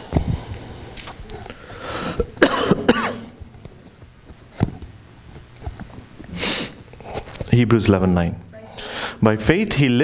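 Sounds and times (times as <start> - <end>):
man coughing: 2.2 - 3.4.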